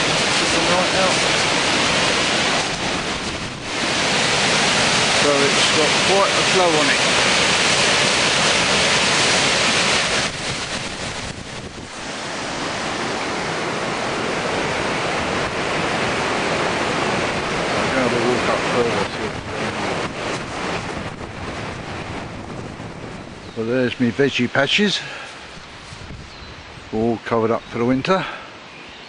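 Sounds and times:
white water rushing: 0.0 - 28.9.

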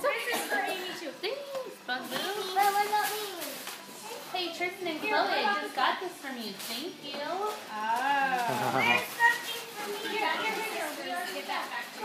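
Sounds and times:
chatter of adults and children: 0.0 - 12.0.

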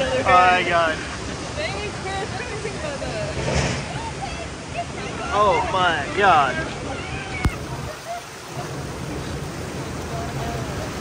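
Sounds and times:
water rushing around raft: 0.0 - 11.0.

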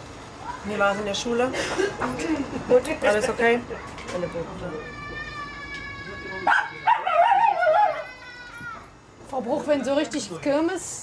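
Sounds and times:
animal whining cry: 4.8 - 8.6.

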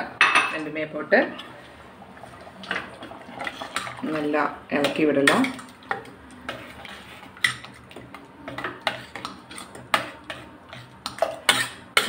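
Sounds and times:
metal ladle scraping a pot: 4.9 - 12.0.

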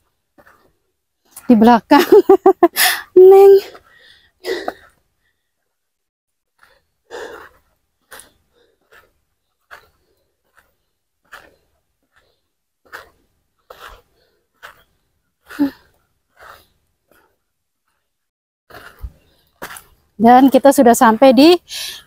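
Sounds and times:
woman breathing hard: 2.7 - 3.1, 3.8 - 5.6, 6.6 - 14.8, 21.7 - 22.0.

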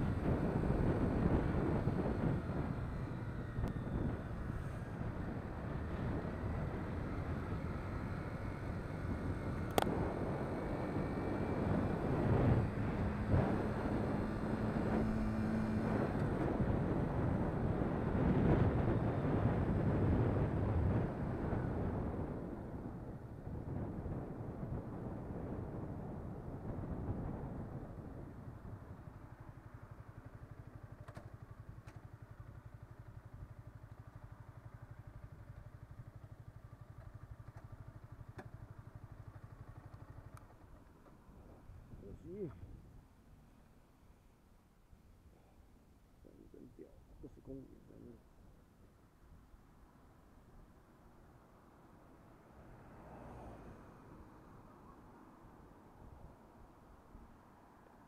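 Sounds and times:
motorcycle engine running: 0.0 - 43.5.

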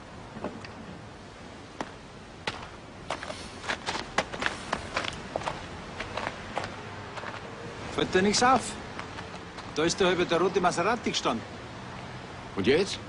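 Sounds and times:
steady background hiss: 0.0 - 13.0
footsteps walking: 1.8 - 7.5, 8.9 - 9.8.

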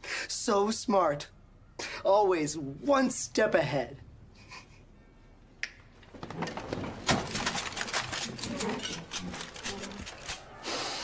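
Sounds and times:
finger snap: 5.6 - 5.8.

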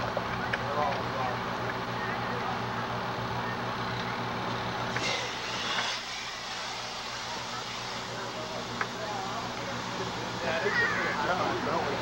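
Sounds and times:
truck engine running: 0.0 - 12.0
brief hiss: 4.9 - 8.9.

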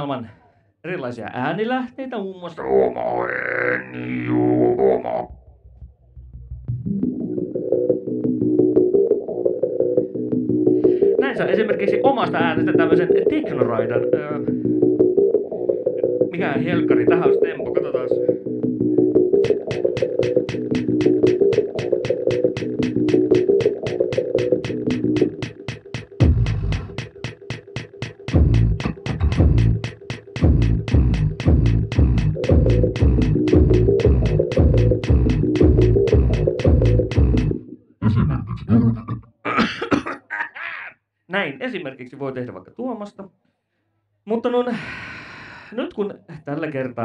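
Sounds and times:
short vocal sounds: 2.6 - 5.4, 37.1 - 39.5
sustained looped layer: 6.2 - 37.7
deep kick drum thump: 26.2 - 27.1, 28.3 - 37.5.

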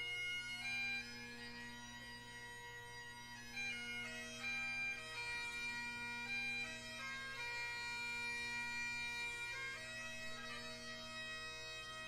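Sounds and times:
bagpipe playing solo: 0.0 - 12.0.

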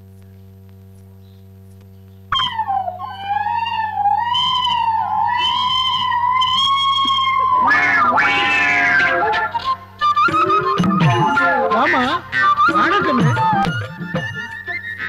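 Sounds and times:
faint hum: 0.0 - 15.0
film music with wavering melody: 2.3 - 15.0.

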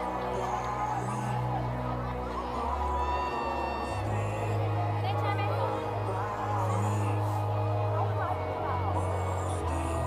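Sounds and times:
music with low bass notes: 0.0 - 10.0.

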